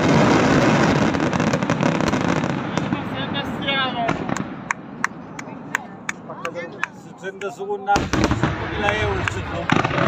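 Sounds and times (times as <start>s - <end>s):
fireworks bangs: 0.0s - 10.0s.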